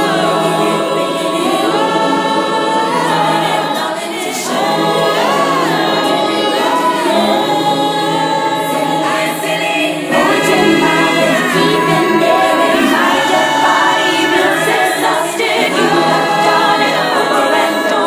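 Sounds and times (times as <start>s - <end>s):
wordless choir singing: 0.0s - 18.0s.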